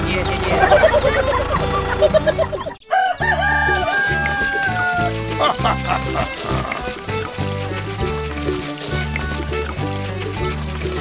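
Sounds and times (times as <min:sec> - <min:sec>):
background music with steady beat: 0:00.0 - 0:11.0
rooster crowing: 0:02.8 - 0:06.9.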